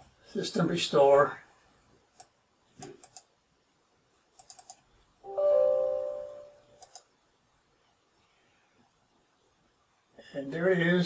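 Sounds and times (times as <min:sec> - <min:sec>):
laptop mouse clicks: 0:02.2 - 0:03.3, 0:04.4 - 0:04.8, 0:06.8 - 0:07.1
computer system chime: 0:05.3 - 0:06.6.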